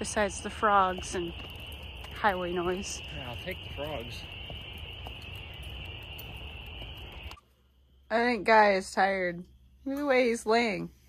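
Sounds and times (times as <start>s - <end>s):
distant highway traffic rumble: 0.0s - 7.4s
frog chorus: 0.0s - 10.7s.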